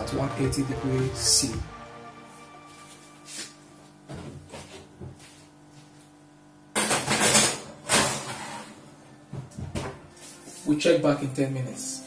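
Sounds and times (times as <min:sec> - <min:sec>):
faint background music: 0:00.0 - 0:04.5, 0:08.3 - 0:12.0.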